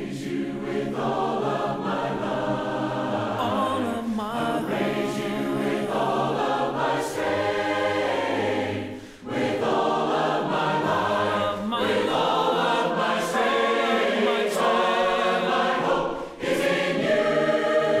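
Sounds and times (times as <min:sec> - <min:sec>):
congregation singing a hymn: 0:00.0 - 0:18.0.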